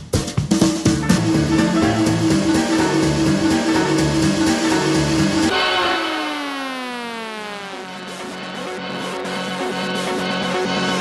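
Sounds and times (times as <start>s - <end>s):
electro swing music: 0.0s - 5.5s
tone sliding down in pitch: 5.5s - 8.4s.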